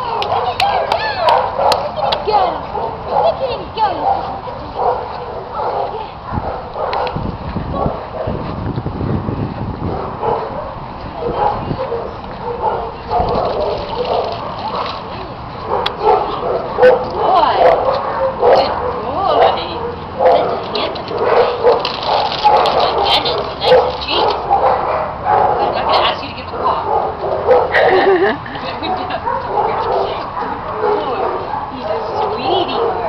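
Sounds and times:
person laughing: 27.7s - 28.7s.

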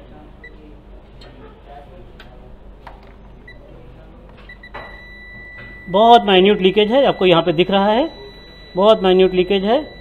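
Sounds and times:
leak detector beeping: 4.5s - 10.0s.

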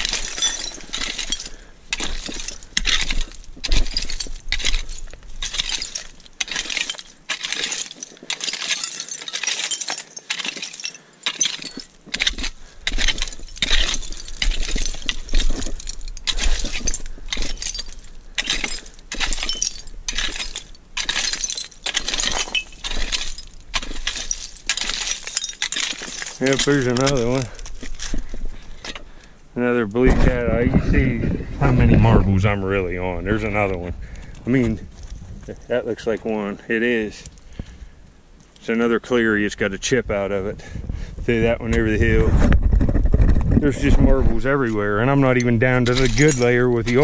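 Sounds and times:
digging tool clinking in soil: 0.0s - 29.1s, 43.7s - 47.0s.

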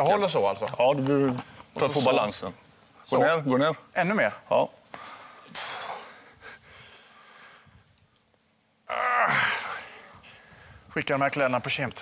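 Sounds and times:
faint breathing: 4.9s - 8.0s, 9.3s - 10.9s.

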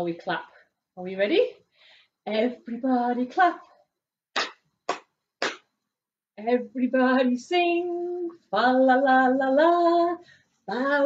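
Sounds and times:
hand claps: 4.4s - 5.7s.

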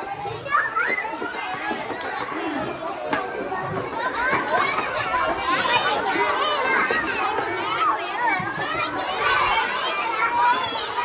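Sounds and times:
young children chattering and calling out: 0.0s - 11.0s.

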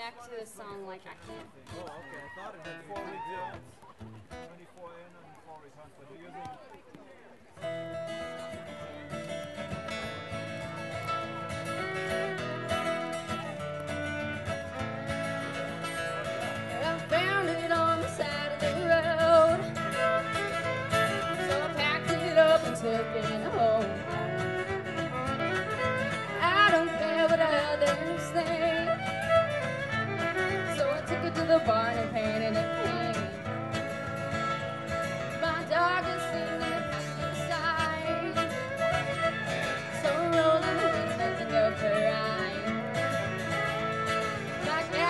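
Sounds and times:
acoustic guitar strumming: 7.6s - 45.0s
fiddle sliding melody: 8.0s - 45.0s.

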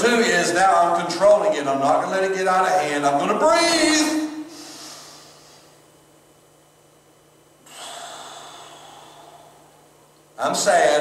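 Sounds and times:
man breathing out deeply: 4.5s - 5.8s, 7.6s - 9.9s.

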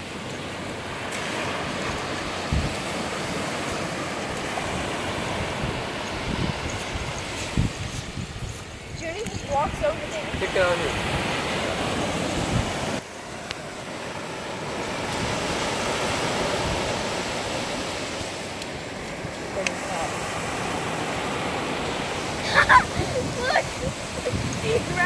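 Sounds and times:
waves breaking on a beach: 0.0s - 25.0s.

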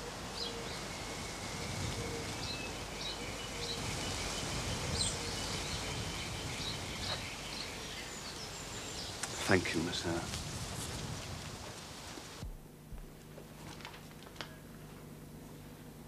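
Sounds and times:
small birds chirping: 0.0s - 10.3s
steady background hiss: 0.0s - 16.0s.

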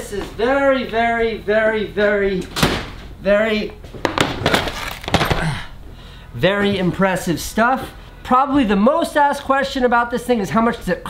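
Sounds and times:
skateboards knocking on desk: 4.0s - 5.4s.

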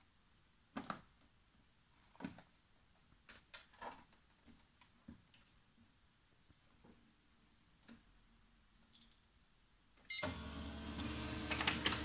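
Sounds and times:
copier mechanism clicks: 10.2s - 12.0s
copier motors whirring: 10.2s - 12.0s.

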